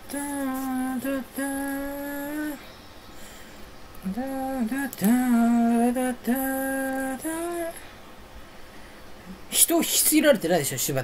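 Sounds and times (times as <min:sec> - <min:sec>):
person singing a steady note: 0:00.0 - 0:08.1
faint hiss: 0:00.0 - 0:11.0.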